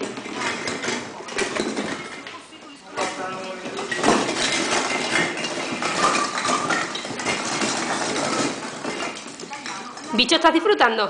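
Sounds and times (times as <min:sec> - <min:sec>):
baubles clattering and clinking: 0:00.0 - 0:11.0.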